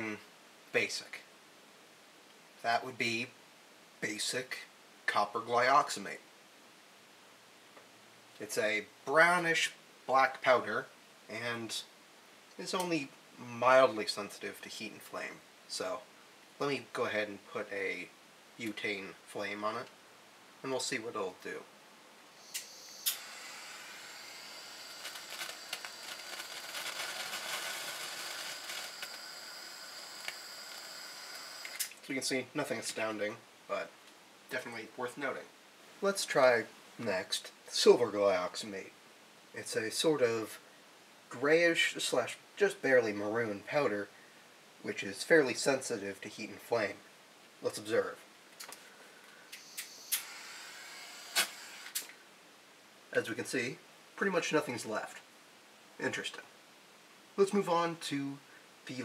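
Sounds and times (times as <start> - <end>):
torch flame hissing: 22.4 - 31.9
powder burning with crackles: 22.4 - 32.2
sharp clicks: 49.5 - 50.3.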